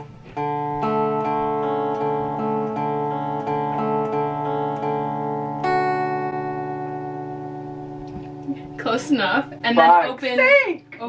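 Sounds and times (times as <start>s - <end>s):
guitar chords strummed slowly: 0.0s - 11.0s.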